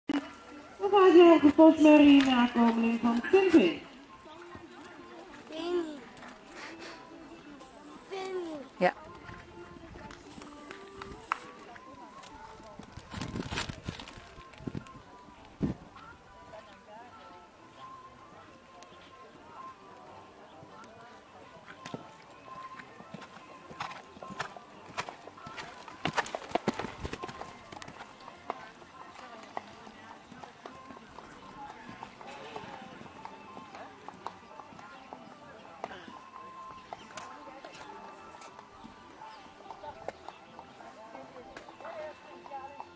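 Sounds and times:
people talking indistinctly: 0.2 - 42.9
horse hoofbeats on sand: 21.6 - 38.7.

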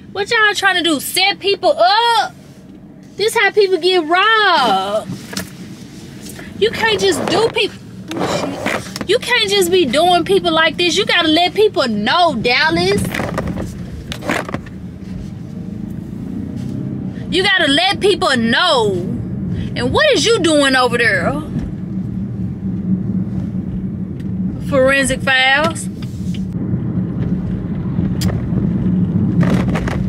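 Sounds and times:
car engine and road noise hum: 0.0 - 30.0.

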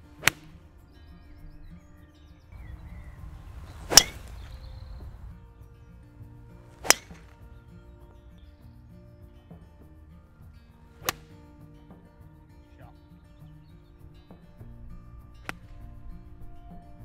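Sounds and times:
golf club striking ball: 0.2 - 0.7, 2.6 - 5.3, 6.7 - 7.5, 11.0 - 11.3, 15.4 - 16.0.

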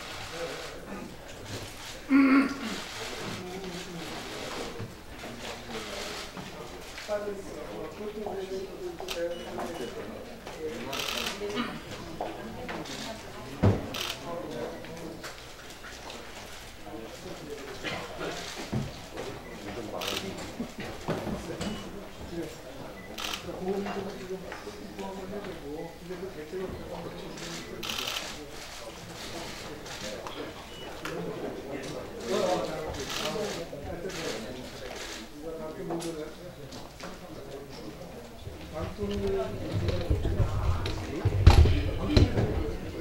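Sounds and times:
people chattering: 0.0 - 43.0
people shuffling: 38.4 - 43.0.

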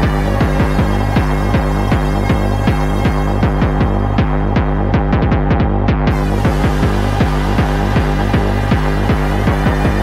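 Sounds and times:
acid techno music: 0.0 - 10.0
fast kick drum beat: 0.0 - 10.0.

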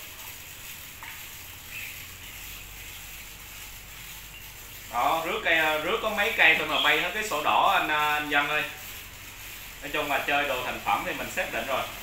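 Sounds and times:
pressure sprayer hissing: 0.0 - 12.0.

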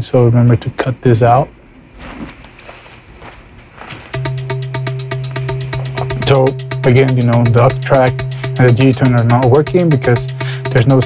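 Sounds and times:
hi-hat ticks: 4.1 - 11.0
bass note: 4.2 - 11.0
synth pattern: 4.2 - 11.0.

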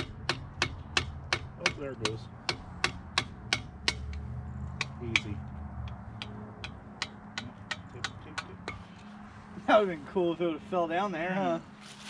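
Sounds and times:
hammer striking steel rod: 0.0 - 8.9.

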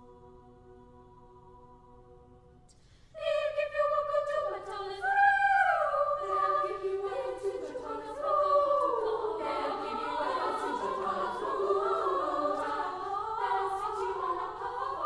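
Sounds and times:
girls' choir singing a cappella: 0.0 - 2.5, 3.2 - 15.0.

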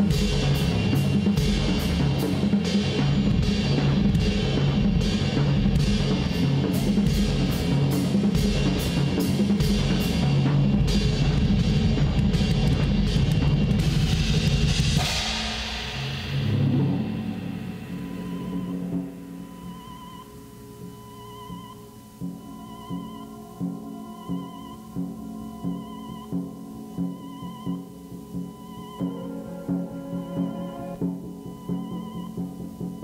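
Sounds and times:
drum kit played fast: 0.0 - 21.2
cymbal wash: 0.0 - 33.0
soft sustained drone: 16.8 - 33.0.

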